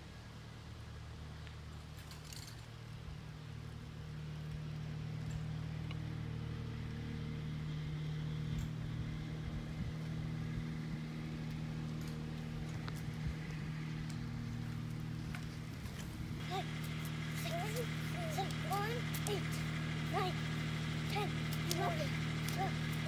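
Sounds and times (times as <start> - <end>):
steady engine hum: 0.0 - 23.0.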